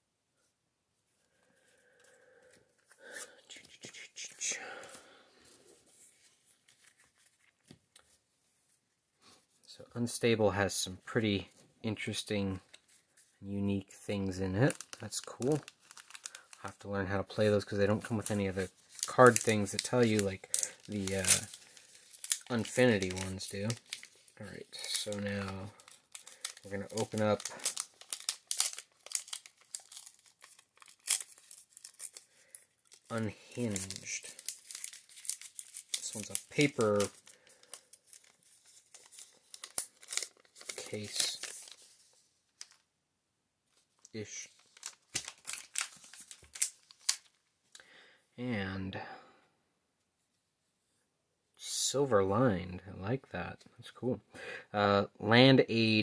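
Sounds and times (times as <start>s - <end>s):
cards rustling and scraping on cloth: 5.4s - 8.9s, 18.0s - 42.8s
plastic wrapper crinkling and tearing: 6.2s - 8.1s, 14.2s - 42.9s, 43.7s - 47.8s.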